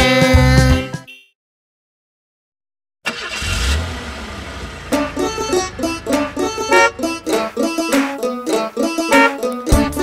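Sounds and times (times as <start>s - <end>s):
bus engine starting and running: 3.0s - 10.0s
plucked banjo music: 4.9s - 10.0s.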